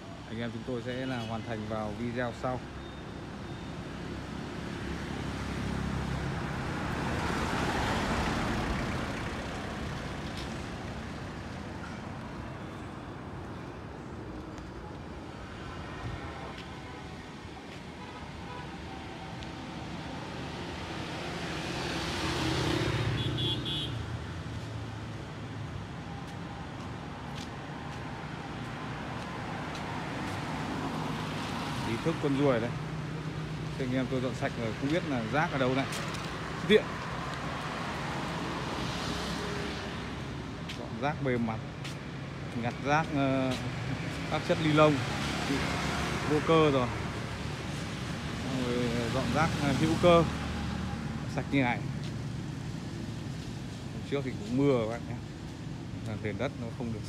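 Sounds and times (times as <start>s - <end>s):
traffic engine hum: 0.0s - 57.0s
vehicles passing close by: 0.0s - 57.0s.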